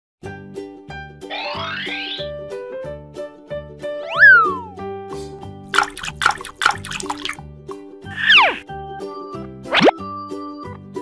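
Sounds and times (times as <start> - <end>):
upbeat cartoon music: 1.2 - 2.7, 4.0 - 4.9, 5.7 - 7.4, 9.7 - 10.1.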